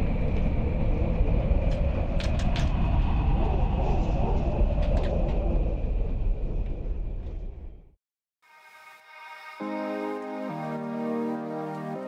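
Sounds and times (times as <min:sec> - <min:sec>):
loud low rumble: 0:00.0 - 0:08.0.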